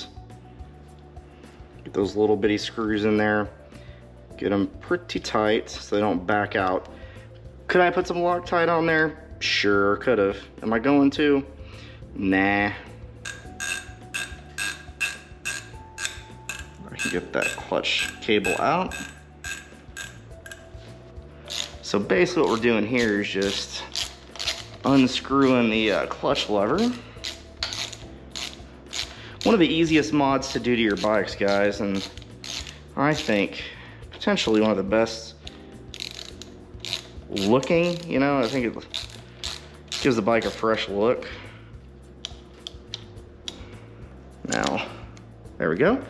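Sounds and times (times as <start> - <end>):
soft background music: 0.0 - 46.0.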